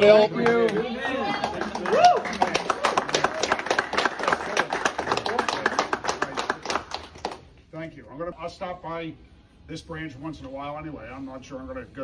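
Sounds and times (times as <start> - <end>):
people applauding: 0.0 - 7.4.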